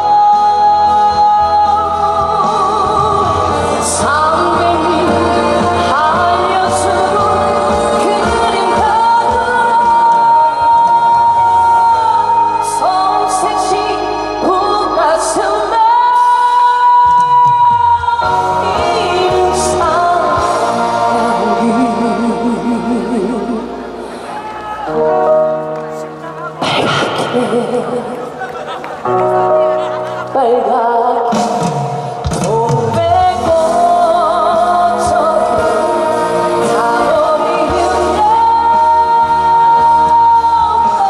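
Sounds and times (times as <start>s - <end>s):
woman singing into microphone: 0.0s - 28.4s, 29.2s - 41.0s
backing music: 0.0s - 41.0s.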